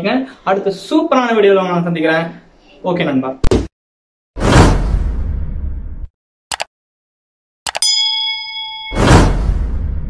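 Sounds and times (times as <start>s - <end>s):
whoosh with deep rumble: 4.4s - 6.1s, 9.0s - 10.0s.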